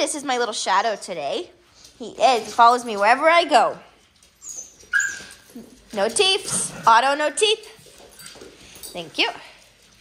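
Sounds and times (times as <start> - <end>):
dog whimpering: 4.4 - 5.6.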